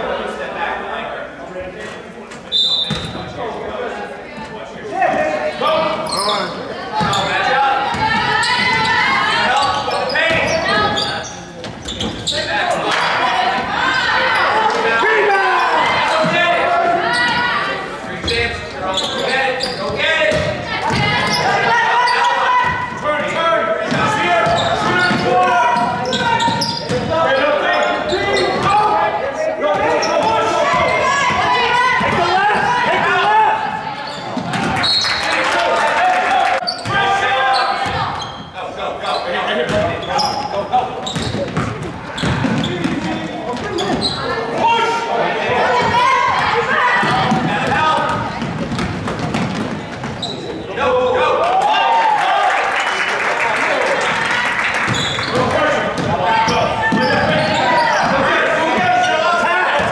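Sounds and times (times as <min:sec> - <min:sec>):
crowd calling and cheering: 0:00.0 - 0:59.9
basketball bouncing on hardwood: 0:20.3 - 0:21.1, 0:41.2 - 0:43.2, 0:47.0 - 0:50.2.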